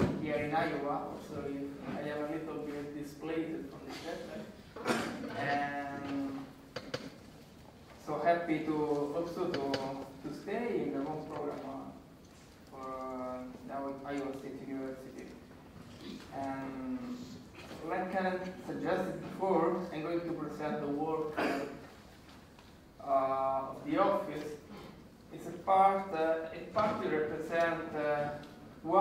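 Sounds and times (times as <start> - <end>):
man speaking: 0.0 - 4.6, 8.0 - 12.0, 12.7 - 15.5, 16.3 - 21.8, 23.0 - 29.0.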